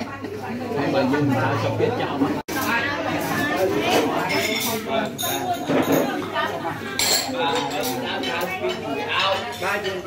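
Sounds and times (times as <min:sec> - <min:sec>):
ceramic dishes and spoons clinking: 0:03.9 - 0:10.0.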